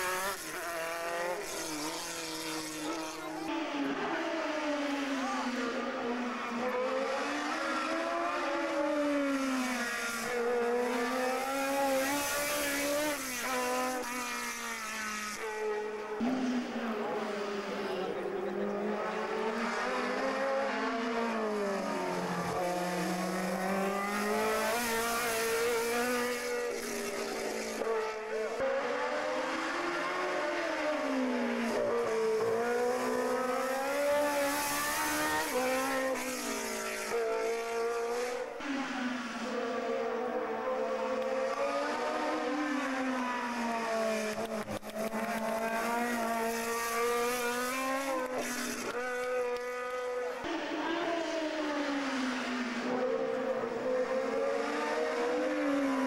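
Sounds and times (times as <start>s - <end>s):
racing car engines revving: 0.0s - 56.0s.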